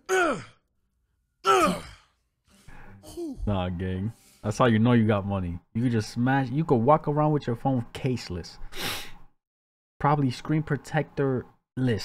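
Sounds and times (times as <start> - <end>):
person saying oh: 1.4 - 2.0, 3.0 - 3.5.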